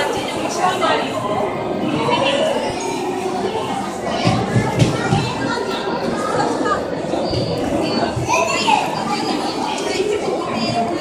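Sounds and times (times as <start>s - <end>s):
crowd chatter indoors: 0.0s - 11.0s
high child's voice: 8.0s - 10.8s.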